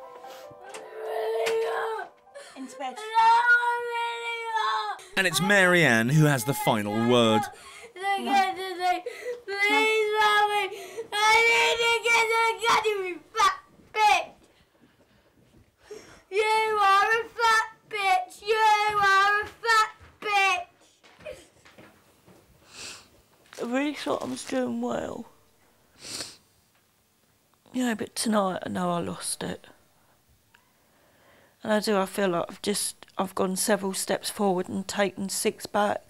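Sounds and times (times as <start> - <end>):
girl singing: 0.8 - 5.5, 6.4 - 14.4, 16.3 - 20.7
girl wailing: 0.8 - 10.1.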